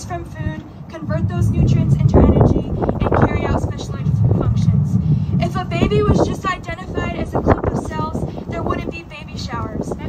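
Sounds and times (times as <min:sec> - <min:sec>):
steady low rumble: 0:00.0 - 0:10.0
woman speaking into a microphone: 0:00.0 - 0:10.0.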